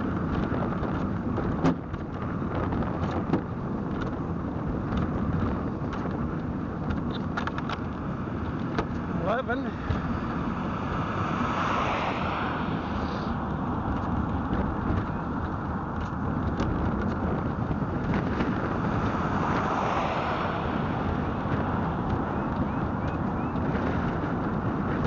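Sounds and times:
road and wind rush: 0.0 - 25.0
car passing: 7.4 - 25.0.

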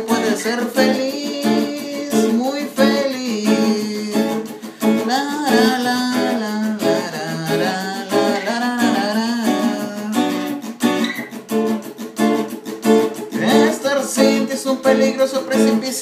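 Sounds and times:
man singing wordless melody: 0.0 - 10.6, 13.4 - 16.0
acoustic guitar strumming: 0.0 - 16.0.

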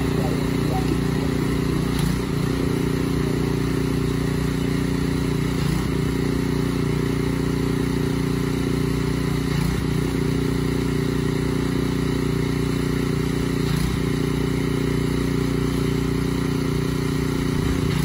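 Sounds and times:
small engine running: 0.0 - 18.0.

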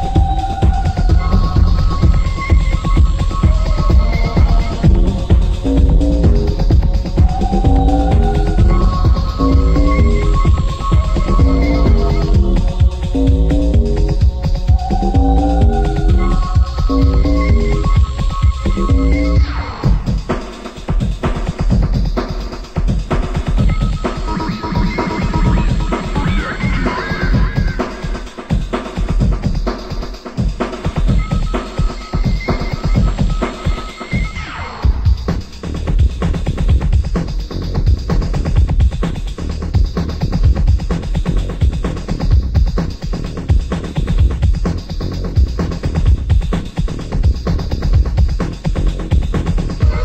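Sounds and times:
electronic kick drum: 0.0 - 50.0
techno house music: 0.0 - 50.0.

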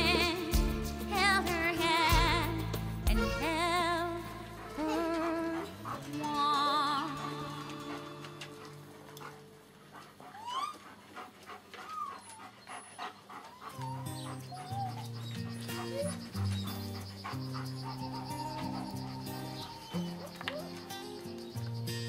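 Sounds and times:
background music: 0.0 - 10.2, 13.9 - 22.0
puppies whining and yelping: 4.2 - 21.9.

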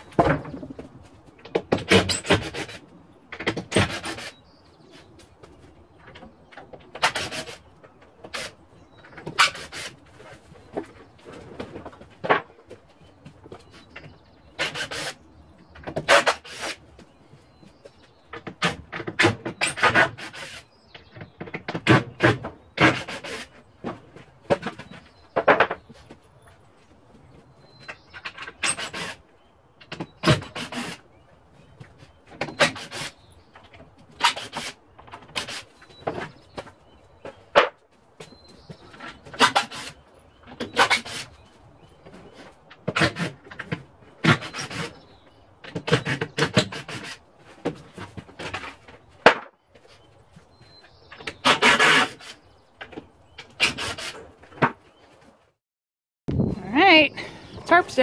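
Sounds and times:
wood knocking creaking and scraping: 0.0 - 55.6
wooden boards being pried off: 0.1 - 4.3, 15.8 - 16.8, 18.3 - 26.1, 29.8 - 31.0, 31.8 - 41.4, 42.1 - 49.9, 51.1 - 54.8.

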